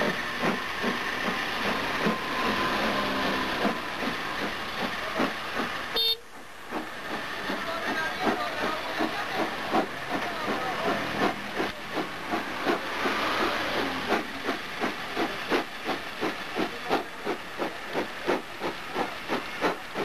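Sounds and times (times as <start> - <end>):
steam hissing: 0.0 - 20.0
steam locomotive chuffing: 0.0 - 20.0.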